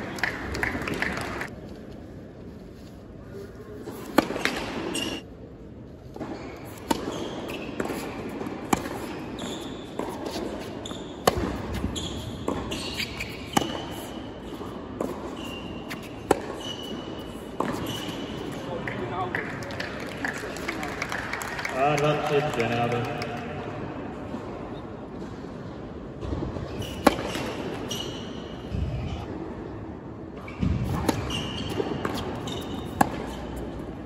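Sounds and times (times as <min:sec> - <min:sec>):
shoes squeaking: 0:02.6 - 0:05.2, 0:06.2 - 0:18.8, 0:26.7 - 0:28.7, 0:30.4 - 0:33.8
racket hitting tennis ball: 0:03.8 - 0:05.2, 0:06.1 - 0:18.6, 0:26.2 - 0:28.0, 0:30.6 - 0:34.0.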